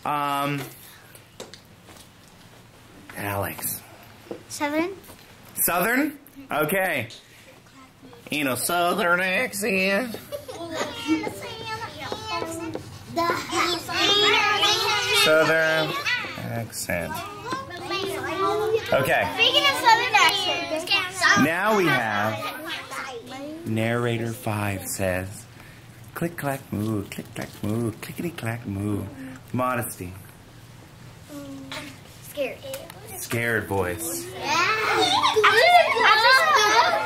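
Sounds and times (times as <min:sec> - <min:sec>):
children chattering: 0:10.1 - 0:25.4, 0:31.3 - 0:37.0.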